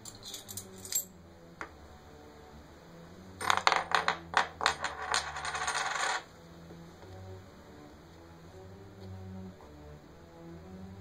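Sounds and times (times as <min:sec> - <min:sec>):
coin clattering and spinning: 0:00.1 - 0:01.1, 0:03.4 - 0:06.3.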